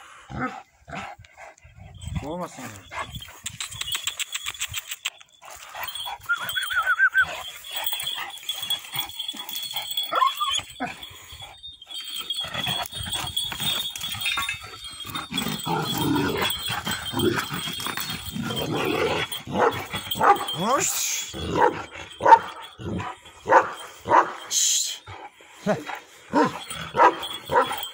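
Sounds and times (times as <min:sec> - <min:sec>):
dog whining: 0:05.9 - 0:11.0.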